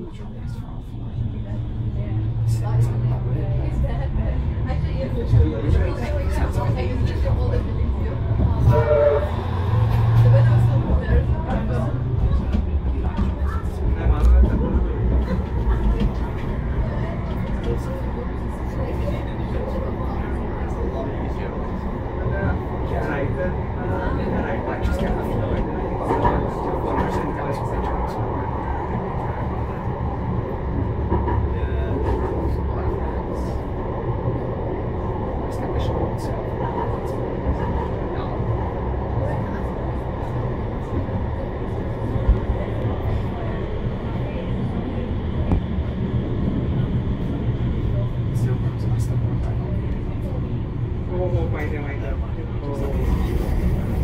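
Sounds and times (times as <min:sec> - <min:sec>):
tram rumbling along track: 0:00.0 - 0:54.0.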